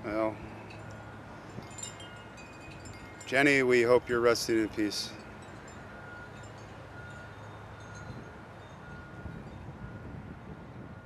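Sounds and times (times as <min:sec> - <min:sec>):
outdoor background hum: 0:00.0 - 0:11.0
faint wind chime tones: 0:00.1 - 0:10.2.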